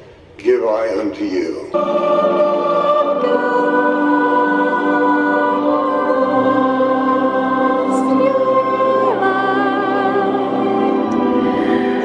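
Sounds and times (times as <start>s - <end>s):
choir singing a slow hymn: 1.6s - 12.0s.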